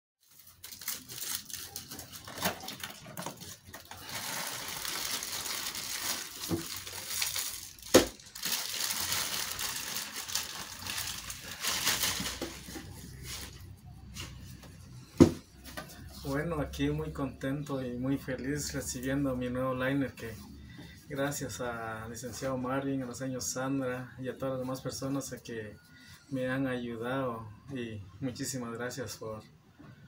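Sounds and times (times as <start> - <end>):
plastic packaging crinkling: 0.2 - 13.7.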